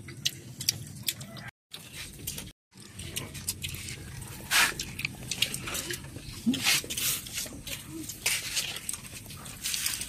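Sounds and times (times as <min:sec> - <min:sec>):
crunchy chewing of raw mango: 0:00.0 - 0:10.0.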